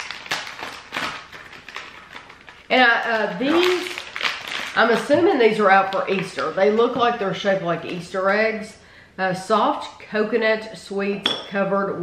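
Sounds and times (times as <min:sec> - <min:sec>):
plastic wrapper crinkling: 0:00.0 - 0:07.3.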